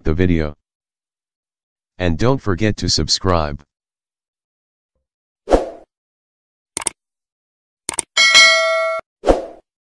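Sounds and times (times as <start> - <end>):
notification bell ding: 8.2 - 9.0.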